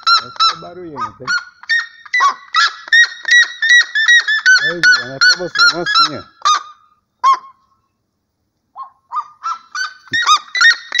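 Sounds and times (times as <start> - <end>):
bird yelping calls: 0.0 - 8.0, 8.7 - 11.0.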